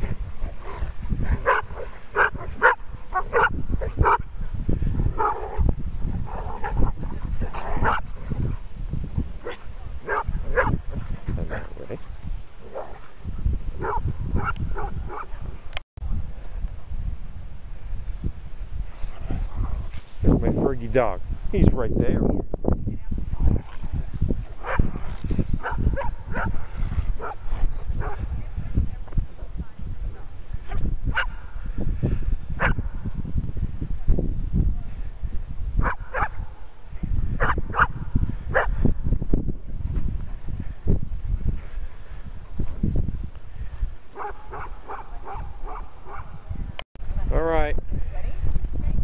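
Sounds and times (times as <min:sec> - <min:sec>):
dogs barking and yipping: 0:00.4 - 0:04.4, 0:05.2 - 0:08.7, 0:09.4 - 0:13.2, 0:13.8 - 0:15.4, 0:25.6 - 0:28.2, 0:30.7 - 0:31.4, 0:35.8 - 0:36.5, 0:37.4 - 0:38.8, 0:44.2 - 0:46.3.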